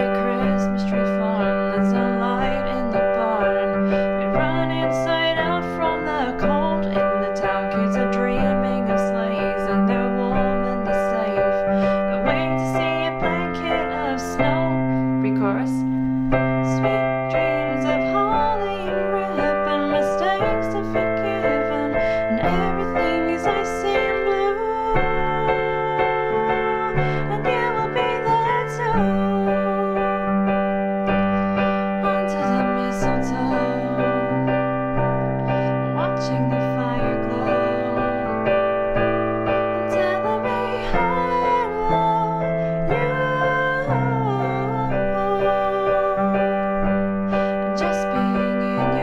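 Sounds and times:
person singing: 0.0s - 49.0s
piano chords: 0.0s - 49.0s.

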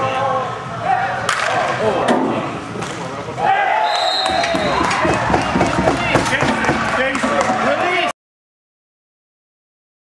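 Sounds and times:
players shouting in echoing hall: 0.0s - 2.6s, 3.2s - 8.1s.

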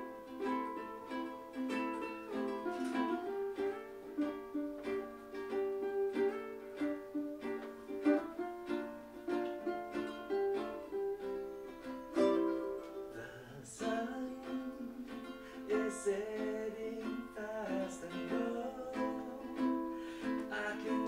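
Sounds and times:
acoustic ukuleles playing: 0.0s - 21.0s.

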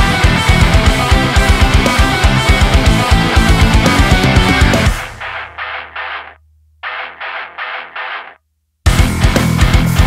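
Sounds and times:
filtered chord stabs: 0.0s - 10.0s
heavy rock band: 0.0s - 10.0s.

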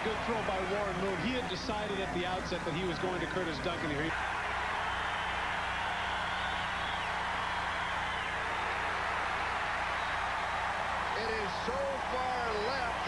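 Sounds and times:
stadium crowd noise: 0.0s - 13.0s.

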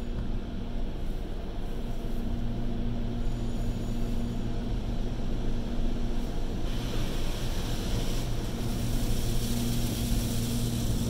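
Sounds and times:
car wash machinery rumbling: 4.6s - 11.0s.

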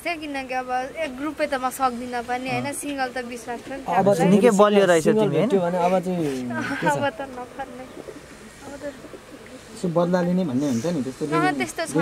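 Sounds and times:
woman talking: 0.0s - 4.4s, 6.5s - 8.0s.

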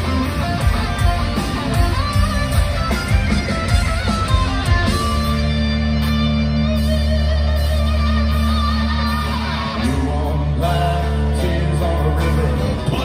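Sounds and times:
bass guitar: 0.0s - 13.0s
drums: 0.0s - 13.0s
electric guitar lead bending notes: 0.0s - 13.0s.

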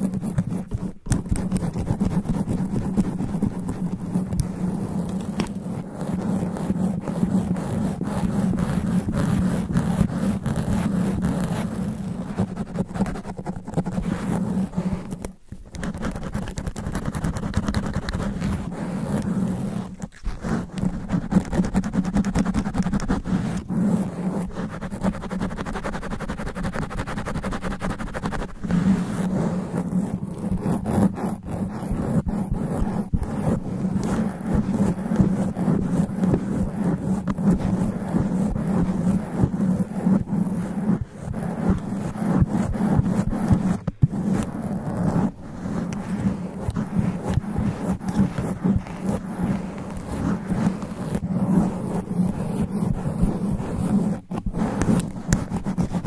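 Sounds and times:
fingernails scratching foam microphone cover: 0.0s - 56.0s.

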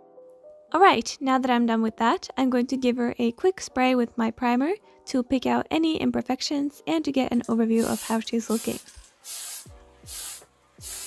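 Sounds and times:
aerosol can spraying: 7.8s - 11.0s.

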